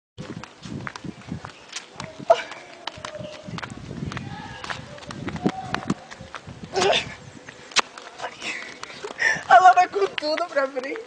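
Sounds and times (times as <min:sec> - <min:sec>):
sandal footsteps on pavement: 0:00.2 - 0:11.0.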